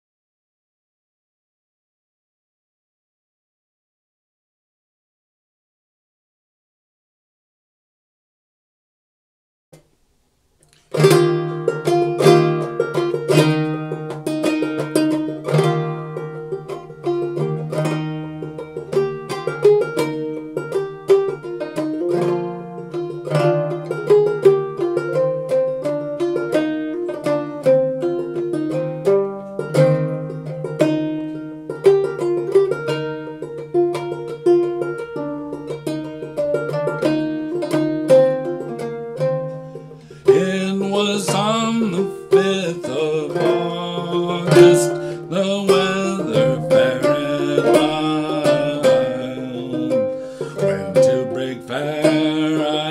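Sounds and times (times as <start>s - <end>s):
banjo plucked clawhammer style: 10.7s - 52.9s
man singing: 40.2s - 52.9s.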